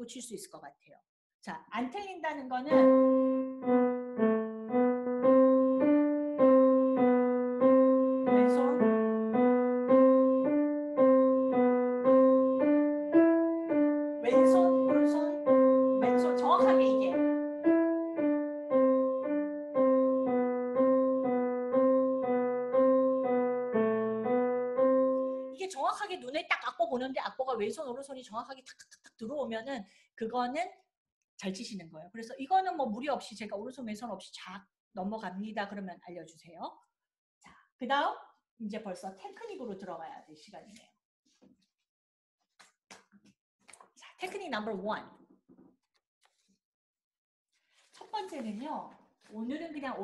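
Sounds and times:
piano playing single notes: 0:02.7 - 0:25.6.

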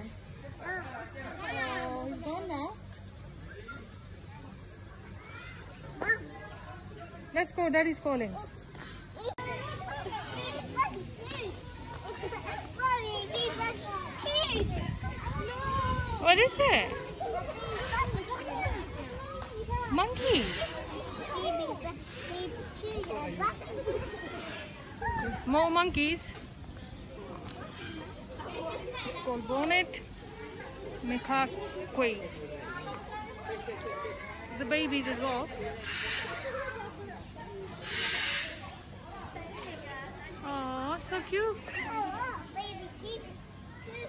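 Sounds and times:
children and people talking and calling: 0:00.0 - 0:44.0.

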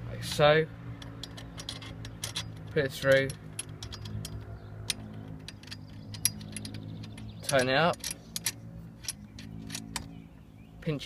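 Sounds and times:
light metallic clicks of shackle: 0:00.3 - 0:10.2.

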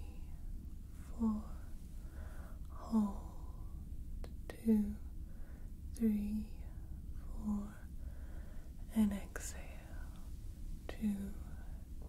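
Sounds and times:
woman whispering: 0:00.0 - 0:00.4, 0:01.0 - 0:01.8, 0:02.6 - 0:05.2, 0:05.9 - 0:08.0, 0:08.8 - 0:12.0.

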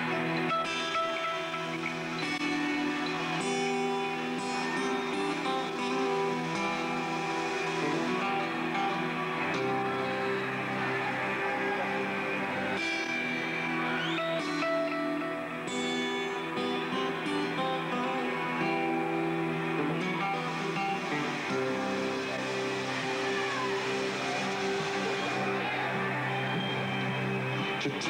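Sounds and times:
acoustic guitar strumming chords: 0:00.0 - 0:28.0.

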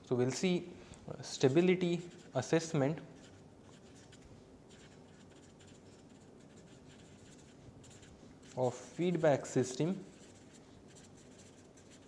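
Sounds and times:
marker scratching on paper: 0:01.3 - 0:12.0.

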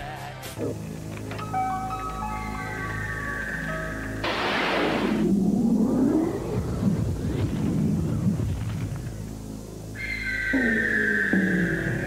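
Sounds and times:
sustained music chords: 0:00.7 - 0:07.4
loud rushing whoosh: 0:04.2 - 0:07.3
low rumbling sound effect: 0:04.2 - 0:09.0.

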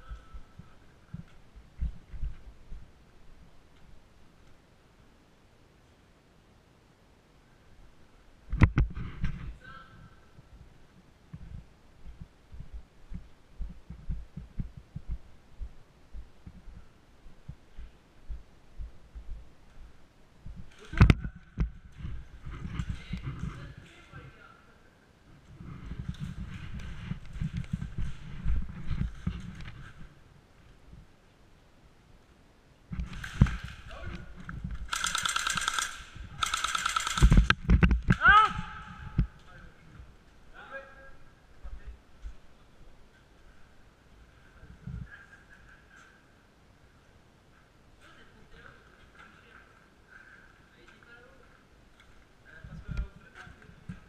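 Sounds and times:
airsoft gun full-auto fire: 0:34.9 - 0:37.6.

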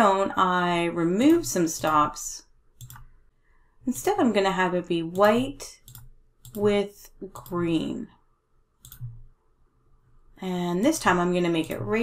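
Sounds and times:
computer mouse click: 0:02.8 - 0:03.1, 0:05.2 - 0:06.7, 0:08.8 - 0:09.2.

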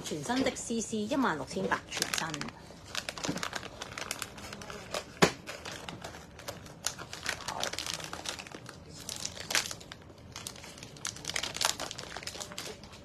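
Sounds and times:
plastic wrapping crinkling: 0:01.5 - 0:13.0.

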